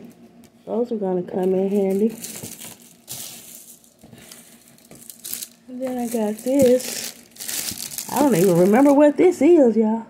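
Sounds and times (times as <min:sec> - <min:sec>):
plastic bag crinkling: 0:01.4 - 0:09.2.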